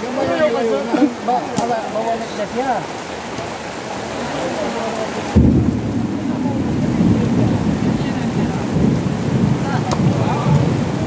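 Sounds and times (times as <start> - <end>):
heavy rain falling: 0.0 - 11.0
thunder rumbling: 5.1 - 11.0.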